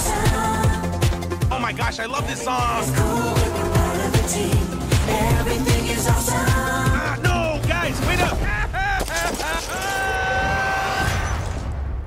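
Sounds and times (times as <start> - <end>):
cartoon character screaming: 9.7 - 11.2.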